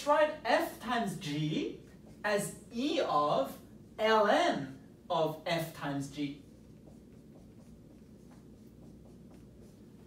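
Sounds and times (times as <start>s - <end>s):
marker writing on a whiteboard: 0.0s - 10.0s.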